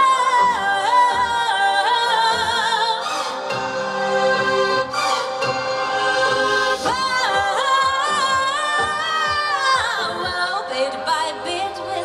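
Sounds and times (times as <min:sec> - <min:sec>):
woman singing: 0:00.0 - 0:03.2, 0:06.8 - 0:12.0
backing track music: 0:00.0 - 0:12.0.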